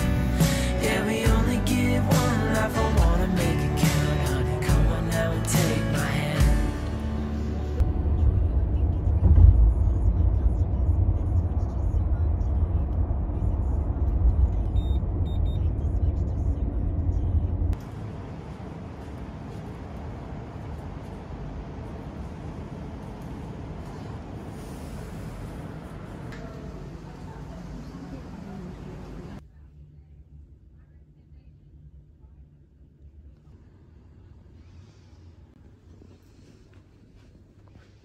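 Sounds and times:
car road rumble inside cabin: 0:06.8 - 0:23.8
short high beeps: 0:14.8 - 0:15.6.

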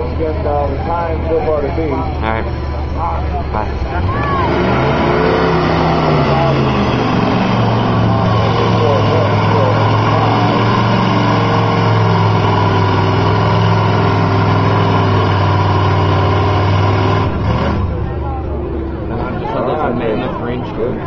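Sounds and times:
truck engine under high load: 0:00.0 - 0:21.0.

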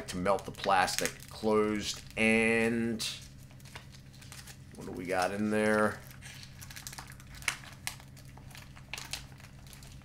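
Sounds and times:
plastic pouch crinkling: 0:00.3 - 0:10.0.

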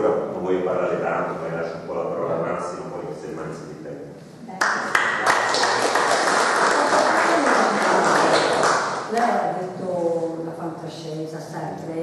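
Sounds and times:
audience applauding: 0:04.6 - 0:09.1.

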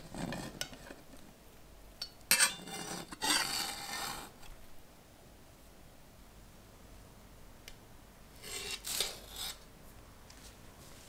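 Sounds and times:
metal server scraping ceramic plate: 0:02.3 - 0:04.4, 0:08.4 - 0:09.6.

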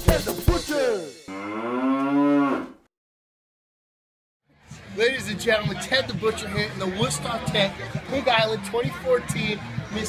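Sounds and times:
music with drum hits: 0:00.0 - 0:01.3
cow mooing: 0:01.3 - 0:02.9.

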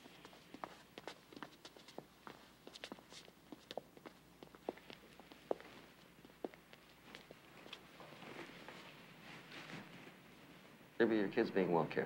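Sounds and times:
faint footsteps: 0:00.0 - 0:10.8.

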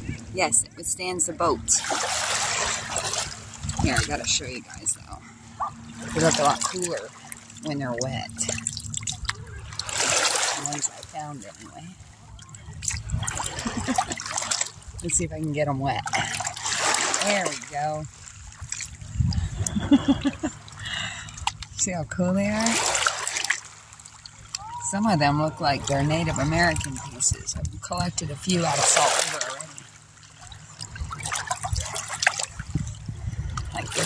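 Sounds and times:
low rumble: 0:00.0 - 0:17.2, 0:18.0 - 0:34.0
water washing over stones: 0:01.7 - 0:05.2, 0:06.0 - 0:11.8, 0:12.8 - 0:19.0, 0:20.3 - 0:33.0
water trickling over stones: 0:06.0 - 0:19.4
woman laughing: 0:13.5 - 0:14.3, 0:19.4 - 0:21.3.

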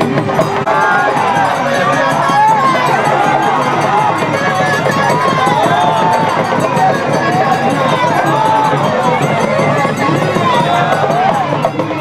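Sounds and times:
crowd calling out: 0:00.0 - 0:12.0.

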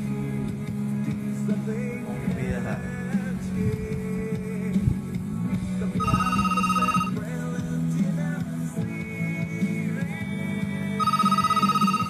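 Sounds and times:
song playing with low notes: 0:00.0 - 0:12.0
high rapidly pulsing tone: 0:06.0 - 0:07.2.

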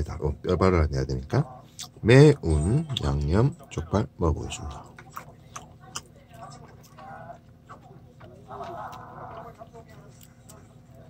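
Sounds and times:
close chewing: 0:04.5 - 0:11.0.

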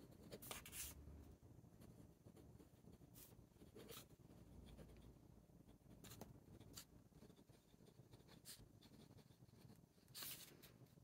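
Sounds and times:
fountain pen scratching on paper: 0:00.0 - 0:01.0, 0:01.7 - 0:10.7.

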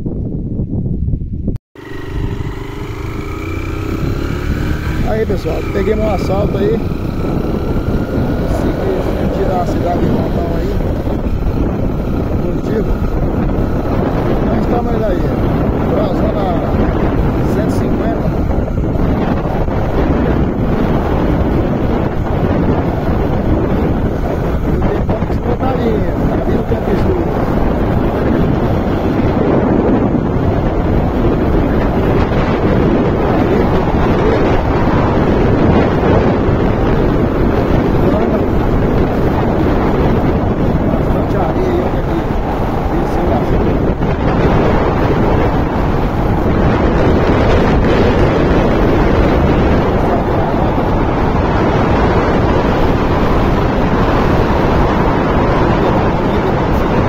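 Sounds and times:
wind rush on microphone: 0:00.0 - 0:57.0
motorcycle engine running: 0:01.2 - 0:57.0.

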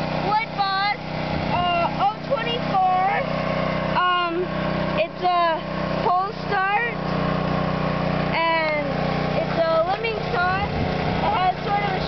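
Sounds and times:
small engine running: 0:00.0 - 0:12.0
boy talking: 0:00.2 - 0:03.3, 0:04.0 - 0:07.0, 0:08.3 - 0:12.0.

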